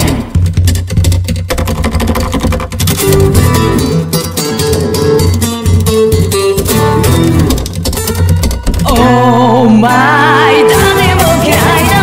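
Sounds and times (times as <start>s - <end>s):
muted acoustic guitar strums: 0.0s - 9.9s
electric bass line: 2.7s - 12.0s.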